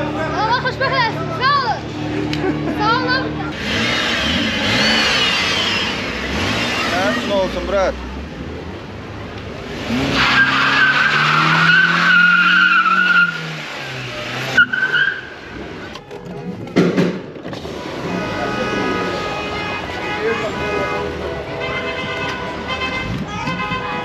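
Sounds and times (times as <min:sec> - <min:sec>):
car engine revving: 0:01.9 - 0:15.9, 0:17.1 - 0:21.4
tyres squealing: 0:10.0 - 0:13.5.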